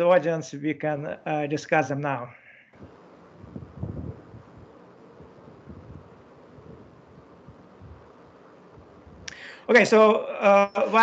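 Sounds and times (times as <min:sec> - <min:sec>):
microphone hiss: 0:00.0 - 0:11.0
soft low bumps: 0:02.8 - 0:09.3.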